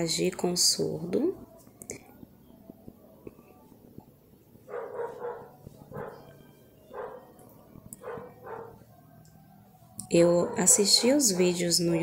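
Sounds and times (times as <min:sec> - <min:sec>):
dog barking: 0:04.7 - 0:07.4, 0:08.0 - 0:08.9, 0:10.4 - 0:11.8.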